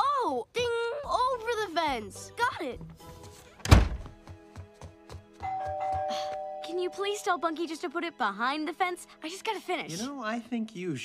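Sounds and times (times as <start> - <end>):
soft music: 0.5 - 11.0
two-tone doorbell chime: 5.4 - 7.2.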